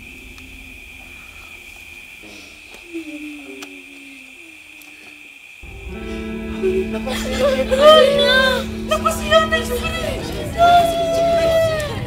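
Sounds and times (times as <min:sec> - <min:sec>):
crickets chirring: 0:00.0 - 0:12.0
soft low wavering call: 0:02.5 - 0:12.0
low sustained music notes: 0:04.3 - 0:12.0.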